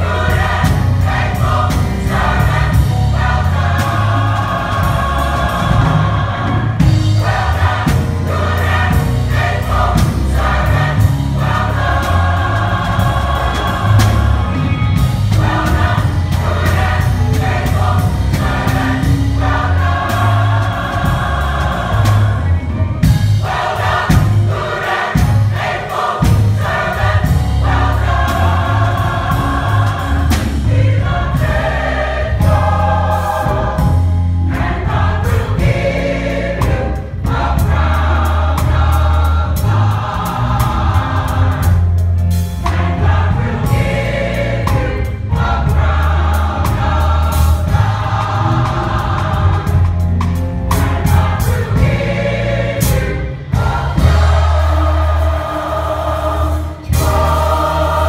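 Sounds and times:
gospel choir singing: 0.0s - 58.0s.

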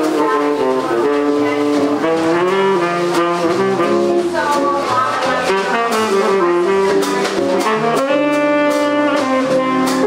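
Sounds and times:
drum kit with cymbals: 0.0s - 10.0s
guitar: 0.0s - 10.0s
tenor saxophone melody: 0.0s - 10.0s
upright bass: 0.0s - 10.0s.

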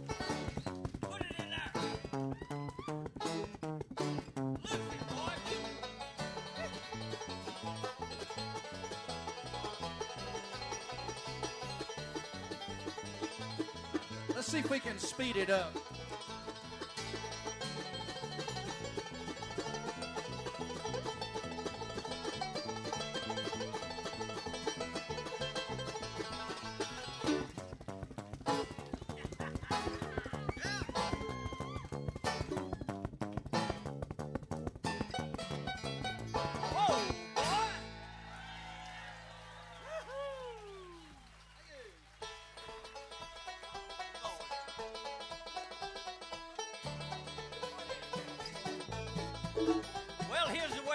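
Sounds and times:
banjo picking: 0.0s - 38.4s, 42.2s - 50.9s
bluegrass band playing: 0.0s - 38.6s, 42.1s - 50.9s.

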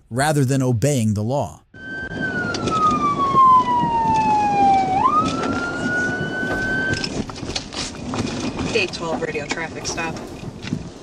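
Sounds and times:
police siren wailing: 1.7s - 7.2s
road and engine noise: 1.8s - 11.0s.

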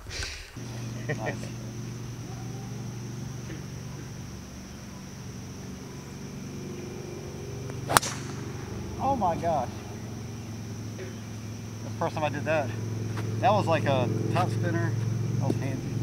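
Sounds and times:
golf driver striking ball: 7.7s - 9.2s.

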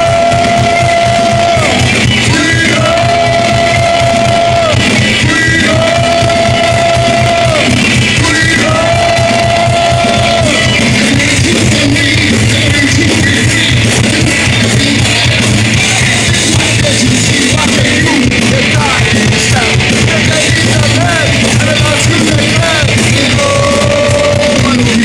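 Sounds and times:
distorted guitars: 0.0s - 25.0s
drums: 0.0s - 25.0s.

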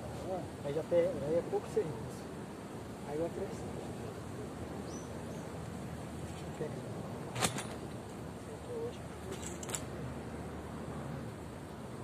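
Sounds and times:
steady outdoor hiss: 0.0s - 12.0s.

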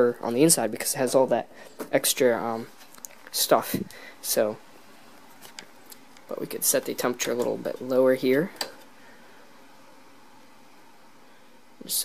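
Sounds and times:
person speaking: 0.0s - 4.7s, 5.4s - 8.9s, 11.8s - 12.0s
faint background hiss: 0.0s - 12.0s.

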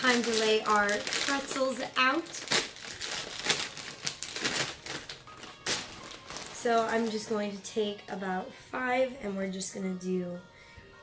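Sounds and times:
plastic snack bag crinkling: 0.0s - 7.4s.

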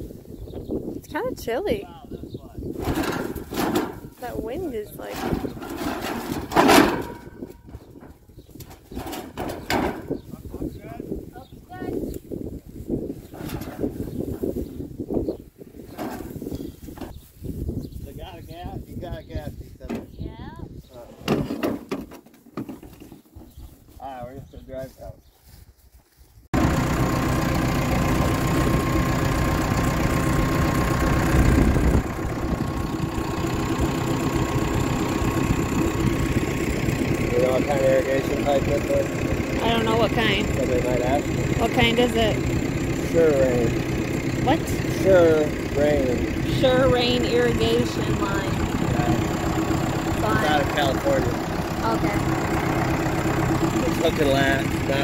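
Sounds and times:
wind buffeting microphone: 0.0s - 21.5s, 30.2s - 55.0s
tractor engine running: 2.7s - 15.2s, 26.6s - 55.0s.

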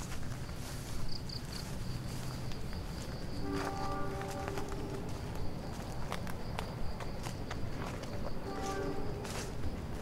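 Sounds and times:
footsteps through grass: 0.0s - 10.0s.

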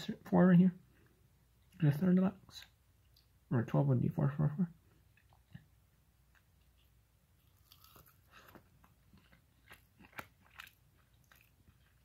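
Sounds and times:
crunching and chewing food: 4.8s - 12.0s.

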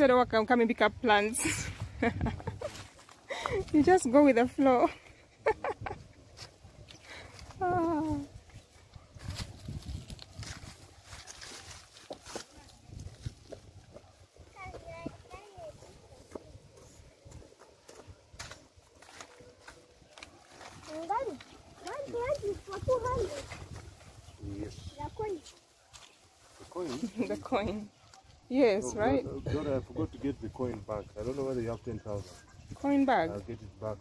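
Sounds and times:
people talking indistinctly: 20.9s - 34.0s.

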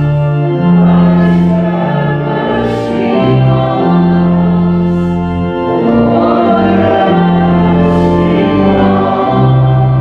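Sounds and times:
church organ playing chords: 0.0s - 10.0s
congregation singing: 0.0s - 10.0s.

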